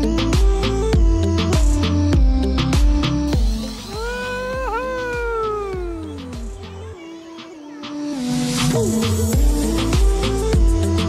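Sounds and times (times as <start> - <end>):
background music with steady beat: 0.0 - 11.0
person's long drawn-out call: 3.9 - 6.4.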